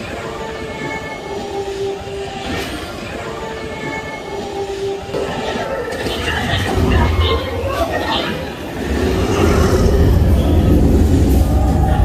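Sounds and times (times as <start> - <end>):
low rushing rumble: 8.7 - 12.0.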